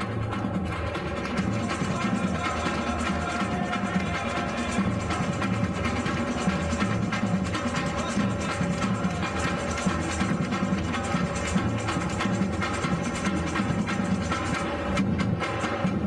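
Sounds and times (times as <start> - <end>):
hand drums struck with sticks: 0.0 - 16.0
snare drums: 0.0 - 16.0.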